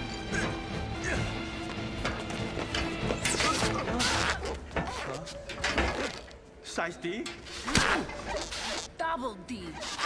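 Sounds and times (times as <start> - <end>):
action film score: 0.0 - 10.0.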